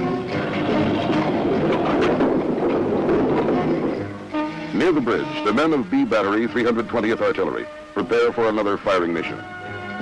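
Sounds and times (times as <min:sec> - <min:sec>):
truck engine running: 0:00.0 - 0:06.2
background music: 0:00.0 - 0:10.0.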